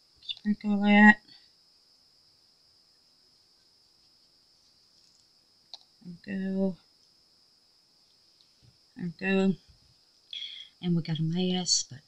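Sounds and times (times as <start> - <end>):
faint high-pitched whine: 0.0 - 12.0
person speaking: 0.2 - 1.3, 6.0 - 6.8, 9.0 - 9.7, 10.3 - 12.0.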